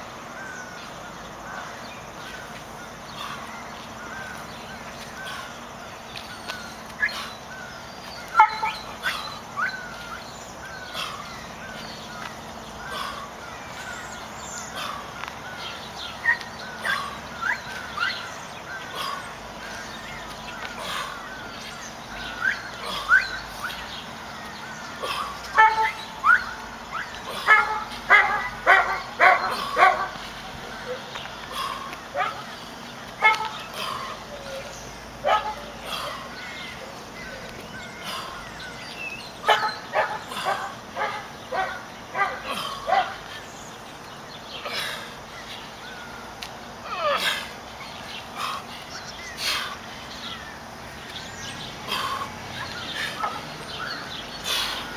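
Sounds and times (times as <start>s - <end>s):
birds chirping: 0.0s - 54.9s
dog barking: 27.4s - 30.2s, 32.2s - 32.4s, 33.2s - 33.6s, 35.2s - 35.7s, 39.4s - 43.2s.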